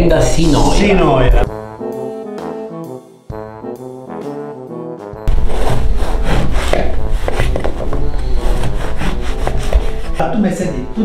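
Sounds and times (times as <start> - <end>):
brass music: 0.0 - 11.0
knife sawing through crusty bread: 5.3 - 10.2.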